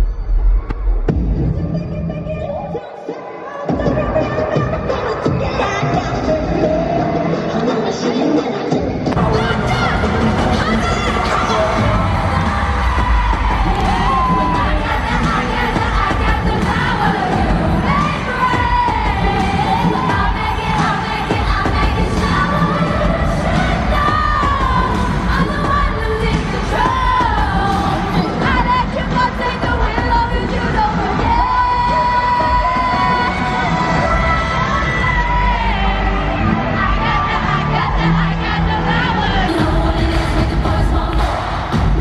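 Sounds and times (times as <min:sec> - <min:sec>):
crowd cheering and screaming: 0:00.0 - 0:42.0
loud live pop music: 0:00.0 - 0:42.0
girl group singing: 0:09.1 - 0:42.0.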